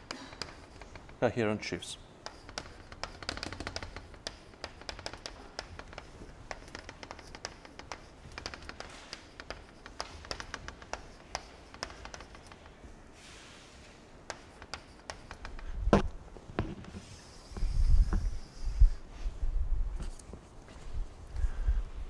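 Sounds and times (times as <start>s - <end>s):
chalk writing on blackboard: 0.0s - 1.2s, 2.1s - 15.8s, 16.6s - 19.0s.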